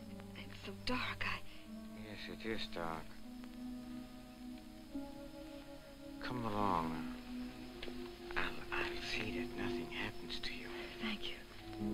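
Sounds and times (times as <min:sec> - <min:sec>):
music with sustained low notes: 0:00.0 - 0:11.9
soft whispering: 0:08.3 - 0:11.8.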